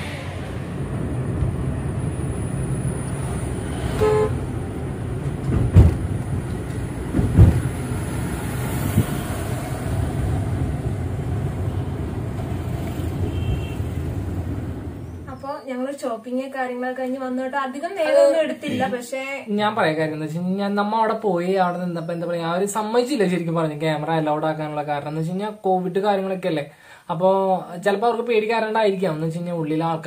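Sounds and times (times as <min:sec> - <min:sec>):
car cabin road noise: 0:00.0 - 0:15.3
car horn toot: 0:03.9 - 0:04.4, 0:13.3 - 0:14.0
dull thumps: 0:05.4 - 0:06.1, 0:07.1 - 0:07.8.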